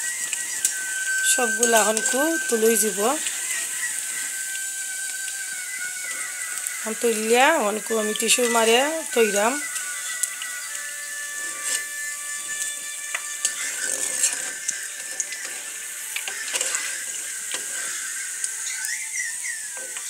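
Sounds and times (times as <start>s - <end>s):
fritters sizzling in oil: 0.0s - 20.0s.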